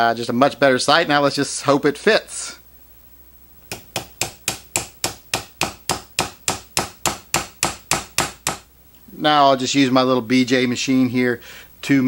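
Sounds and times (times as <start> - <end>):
hammer tapping metal punch: 3.7 - 8.7.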